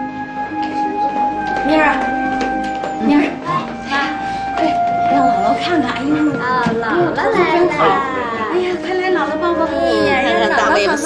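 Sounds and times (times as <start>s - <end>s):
background music: 0.0s - 11.0s
excited voices greeting: 9.9s - 11.0s.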